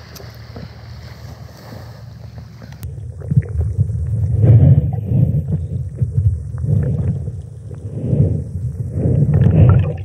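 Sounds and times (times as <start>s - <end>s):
wind rumble on microphone: 1.4s - 10.0s.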